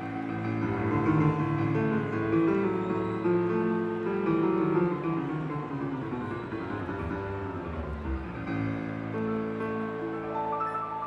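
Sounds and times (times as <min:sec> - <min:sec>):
solo piano: 0:00.0 - 0:11.0.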